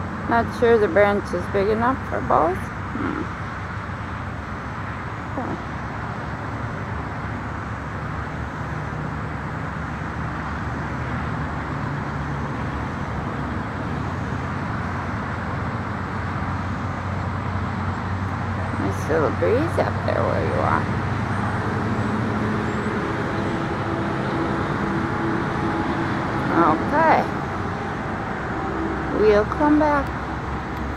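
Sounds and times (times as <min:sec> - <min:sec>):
distant road traffic: 0:00.0 - 0:30.9.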